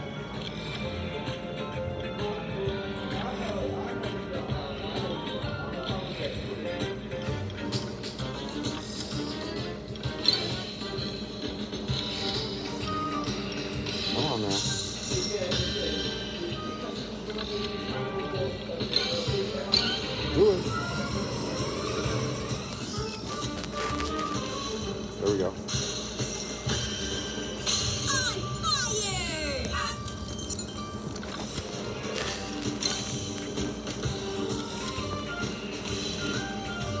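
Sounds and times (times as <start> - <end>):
music: 0.0 - 37.0
slot machine electronic jingles: 25.7 - 33.3.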